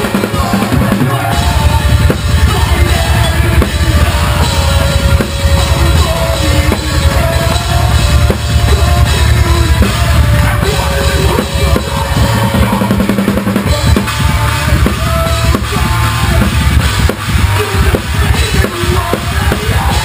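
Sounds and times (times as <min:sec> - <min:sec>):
distorted guitars: 0:00.0 - 0:20.0
metal drum kit: 0:00.0 - 0:20.0.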